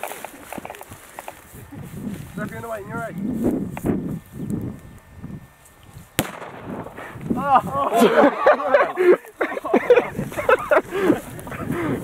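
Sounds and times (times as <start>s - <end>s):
footsteps running through grass: 0.0s - 4.5s, 9.1s - 12.0s.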